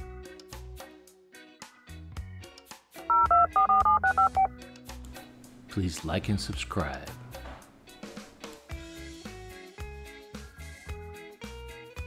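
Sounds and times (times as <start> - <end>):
two-tone keypad beeps: 3.1 - 4.5
soft music with low beat: 3.1 - 8.9.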